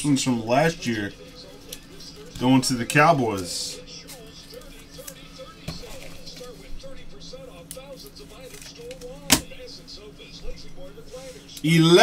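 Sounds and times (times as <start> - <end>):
faint background music: 0.0 - 12.0
handling trading cards: 1.3 - 6.8, 7.6 - 9.6.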